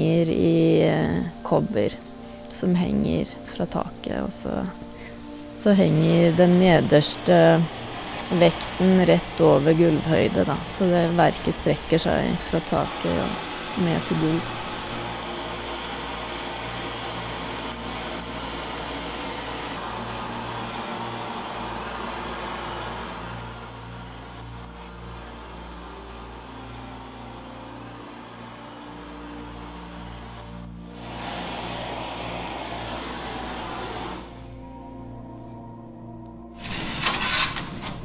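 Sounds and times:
music of low sustained notes: 0.0 - 38.0
gas torch flame hissing: 4.6 - 34.6.

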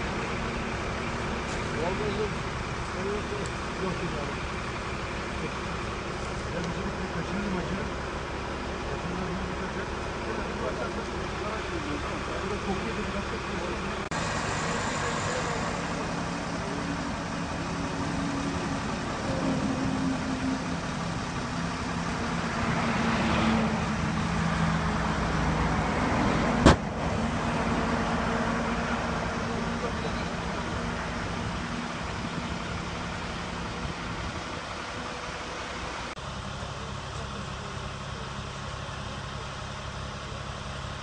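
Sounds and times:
low voices: 0.0 - 26.6, 27.2 - 40.4
road traffic passing: 0.0 - 41.0.

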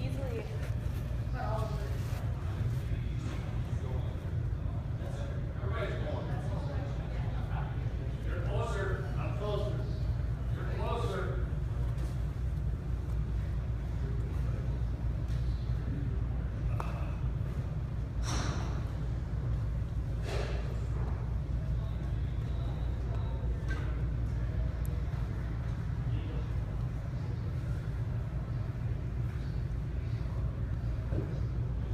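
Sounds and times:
low rumble of indoor hall: 0.0 - 31.9.

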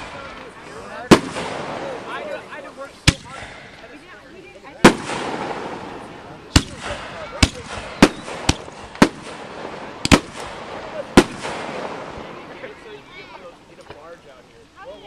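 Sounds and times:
fireworks bangs: 0.0 - 14.2
fireworks crackling: 0.0 - 15.0.

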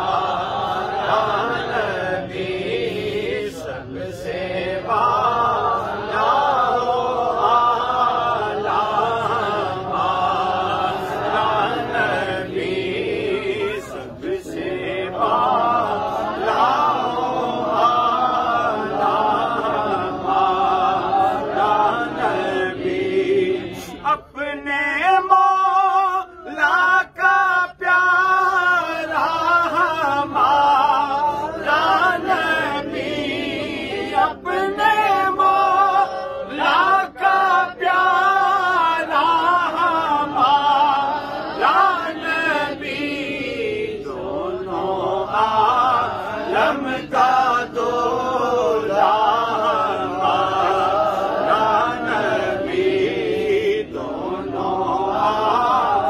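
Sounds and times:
man chanting devotional song: 0.0 - 56.0
man reciting melodic poem: 13.3 - 14.1.

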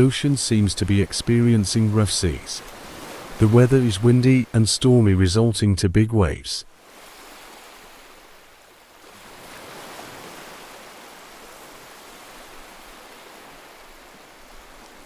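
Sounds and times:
heavy surf breaking on rocks: 0.0 - 5.1.

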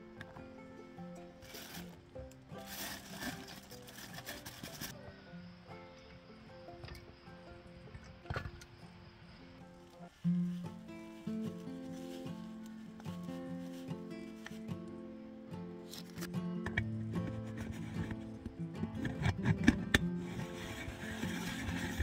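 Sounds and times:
instrumental music: 0.0 - 22.0.

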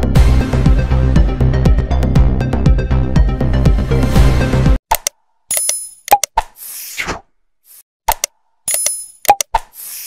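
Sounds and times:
quick pops and clicks: 4.9 - 6.6, 8.0 - 10.0.

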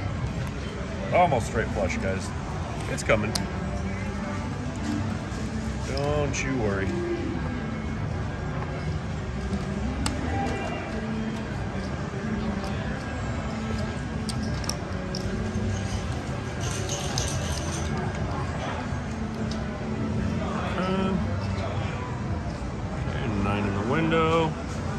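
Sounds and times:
background music: 0.0 - 24.9
steady hum: 0.0 - 24.9.

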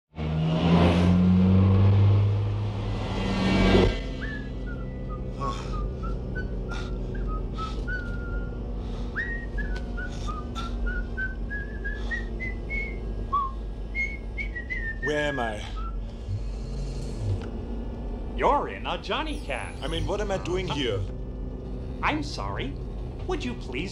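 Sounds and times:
low rumbling hum: 1.0 - 23.9
person whistling a tune: 4.2 - 8.6, 9.2 - 16.0
low hum of car cabin: 4.2 - 23.9.

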